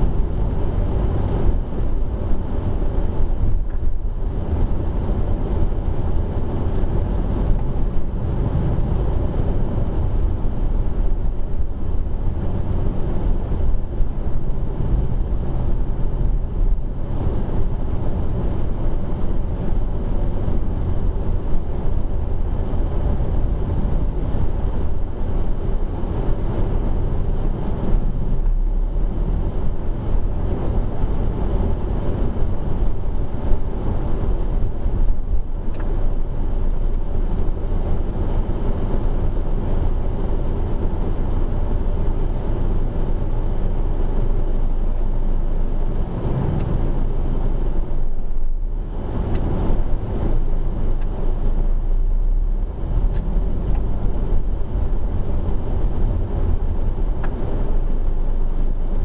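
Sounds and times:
car engine and tyre hum: 0:00.0 - 0:59.0.

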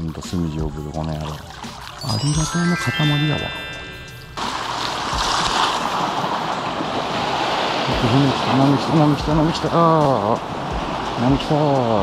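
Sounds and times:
sea waves washing over rocks: 0:04.4 - 0:12.0.

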